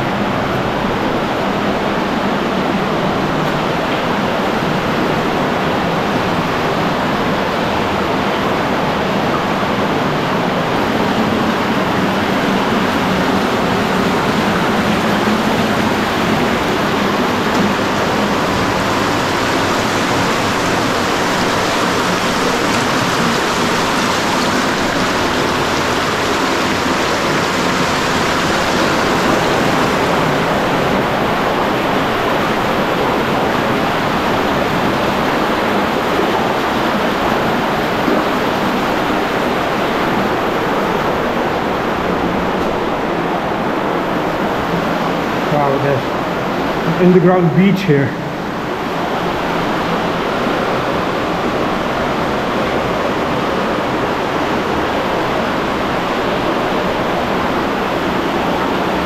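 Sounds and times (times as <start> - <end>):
river rushing over rocks: 0.0 - 59.0.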